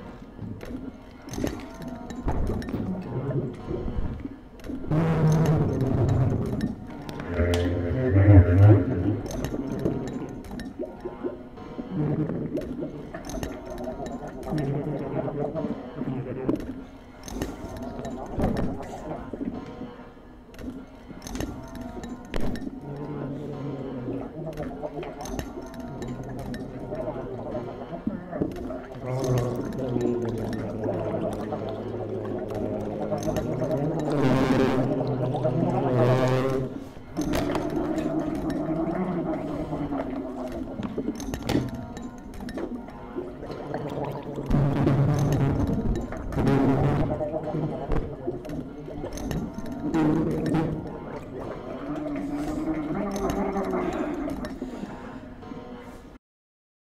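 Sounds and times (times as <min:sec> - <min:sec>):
bass clarinet notes: 0:07.2 - 0:09.3.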